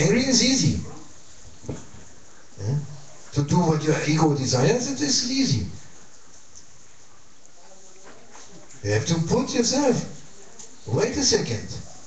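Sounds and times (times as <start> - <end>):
man talking: 0.0 - 1.1, 2.6 - 5.8, 8.8 - 10.2, 10.9 - 11.9
steady background hum: 0.0 - 12.0.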